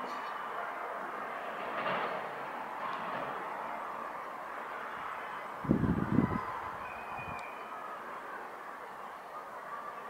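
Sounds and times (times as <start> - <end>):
distant traffic noise: 0.0 - 10.0.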